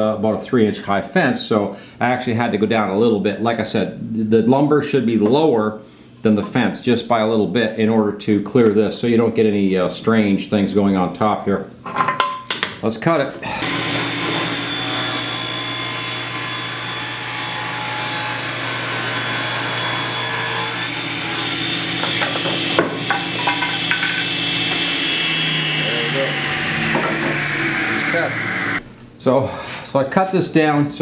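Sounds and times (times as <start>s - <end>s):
table saw cutting wood: 13.4s - 28.8s
saw motor hum: 13.5s - 28.8s.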